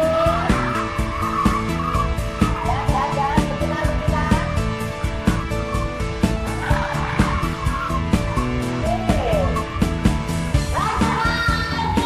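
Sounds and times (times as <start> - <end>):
music with steady beat: 0.0 - 12.0
tyres squealing: 0.0 - 12.0.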